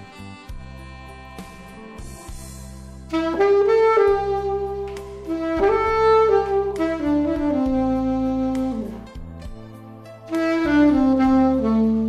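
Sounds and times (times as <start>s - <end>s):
alto saxophone melody: 0.0s - 12.0s
backing track music: 0.0s - 12.0s.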